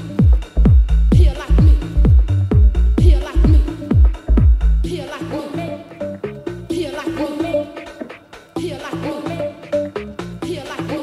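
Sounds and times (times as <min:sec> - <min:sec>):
kick drum: 0:00.0 - 0:04.9
bass line: 0:00.0 - 0:08.0, 0:08.6 - 0:11.0
electronic dance music: 0:00.0 - 0:11.0.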